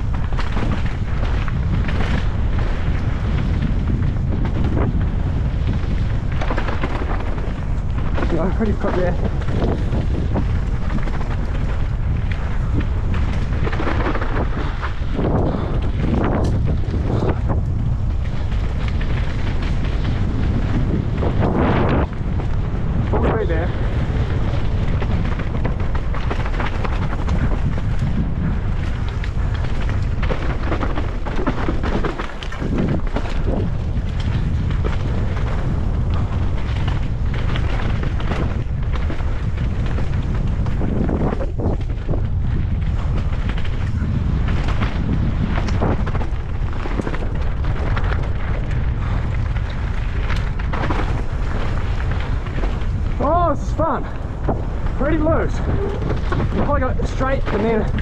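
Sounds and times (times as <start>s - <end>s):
bike knocking on rocks: 0.0s - 53.4s, 54.2s - 58.0s
bike tyres rolling on rocky trail: 0.0s - 58.0s
wind buffeting microphone: 0.0s - 58.0s.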